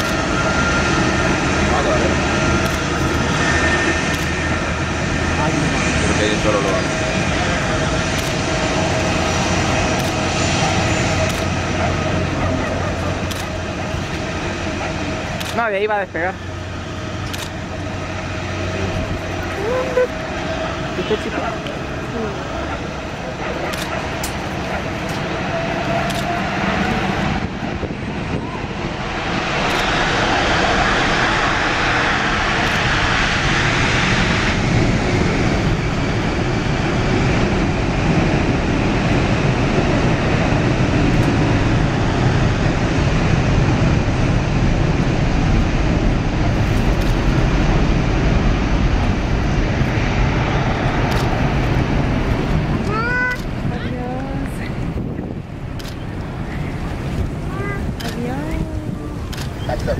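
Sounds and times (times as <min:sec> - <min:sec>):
jet engines spooling up: 0:00.0 - 0:59.9.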